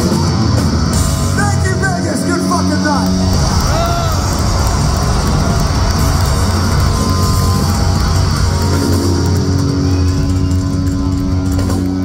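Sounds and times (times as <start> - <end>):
live heavy metal band: 0.0 - 12.0.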